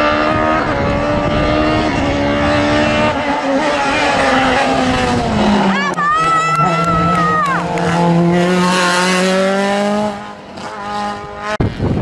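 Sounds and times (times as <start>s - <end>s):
race car engine passing: 0.0s - 11.8s.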